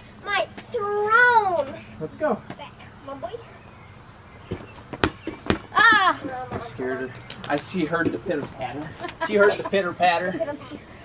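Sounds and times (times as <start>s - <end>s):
rubber ball smacking on concrete: 4.5s - 5.8s.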